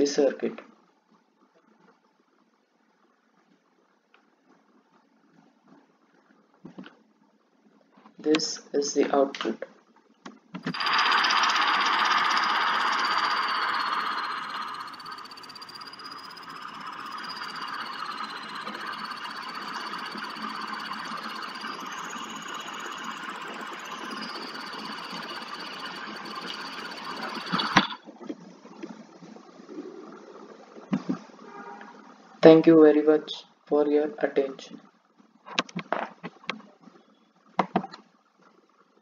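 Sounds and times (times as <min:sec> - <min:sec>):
electronic buzzing tone: 0:10.6 - 0:28.0
thin high whistle: 0:10.7 - 0:28.0.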